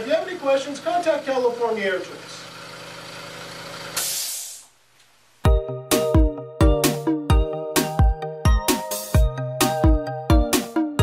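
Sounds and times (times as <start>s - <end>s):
air compressor humming: 0.0s - 4.8s
air hissing from valve: 3.9s - 4.8s.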